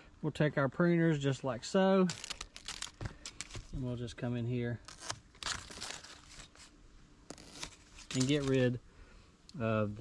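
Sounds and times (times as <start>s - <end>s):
leaves rustling: 1.9s - 8.8s.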